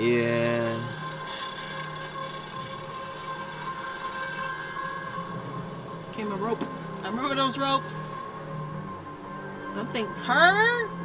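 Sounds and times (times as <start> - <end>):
steady quiet drone: 0.0 - 11.0.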